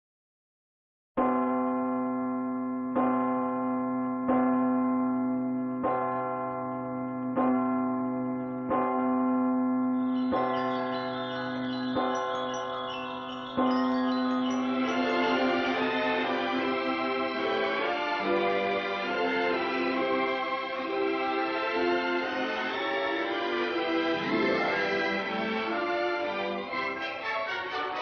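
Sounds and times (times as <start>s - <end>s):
large church bell tolling: 1.2s - 28.0s
higher ringing bells: 9.9s - 28.0s.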